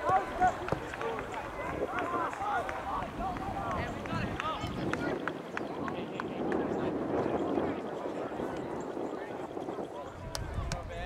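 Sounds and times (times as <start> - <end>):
faint voices calling: 0.0 - 11.0.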